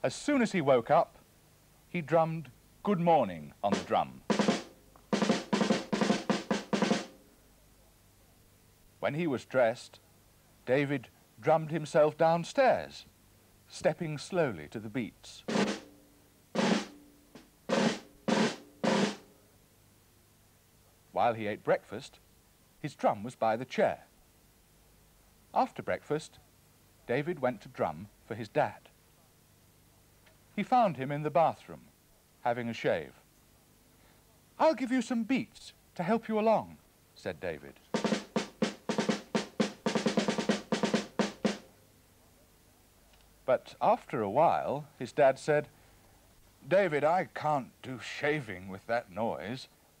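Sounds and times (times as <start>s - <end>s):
toy drum beats: 3.8s - 7.2s, 16.6s - 19.2s, 38.0s - 41.7s.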